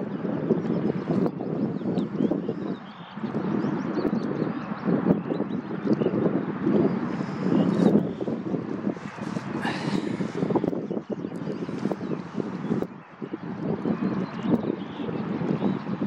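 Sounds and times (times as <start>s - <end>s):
wind buffeting microphone: 0.0s - 16.0s.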